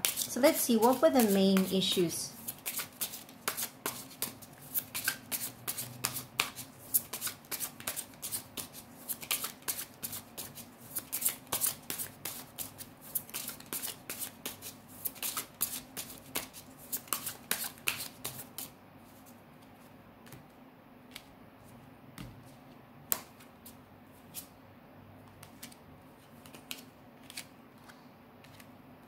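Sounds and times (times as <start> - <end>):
deck of cards shuffled by hand: 0.0 - 19.4, 25.3 - 28.7.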